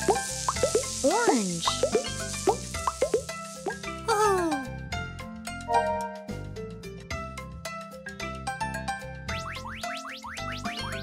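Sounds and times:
children's background music: 0:00.0 - 0:11.0
cartoon plops: 0:01.6 - 0:03.2.

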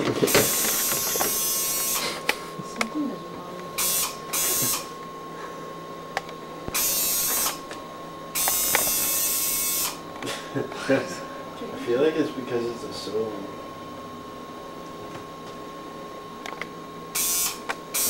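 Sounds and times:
camcorder zoom motor whirring: 0:00.1 - 0:02.4, 0:03.6 - 0:05.0, 0:06.6 - 0:10.0, 0:17.1 - 0:18.0.

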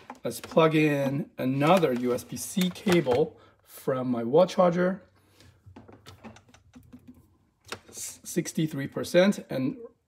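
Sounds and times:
cable plug clicks and rattles: 0:01.6 - 0:03.3, 0:05.7 - 0:08.0.

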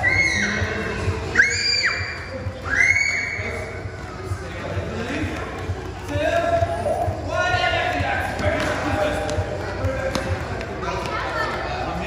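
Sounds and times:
children calling: 0:00.0 - 0:12.0.

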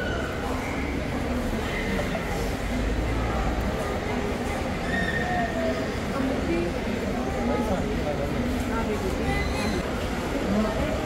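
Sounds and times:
faint voices: 0:00.0 - 0:11.0
low rumble of airport forecourt: 0:00.0 - 0:11.0.

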